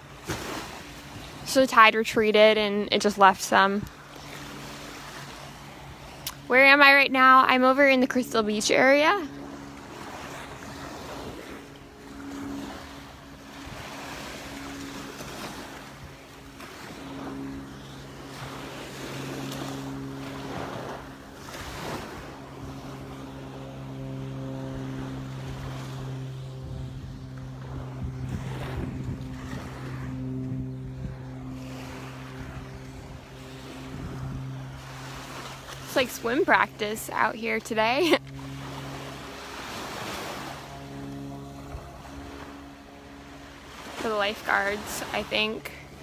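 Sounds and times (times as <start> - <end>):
low hum with held tones: 0.0 - 46.0
waves breaking on sandy shore: 0.0 - 46.0.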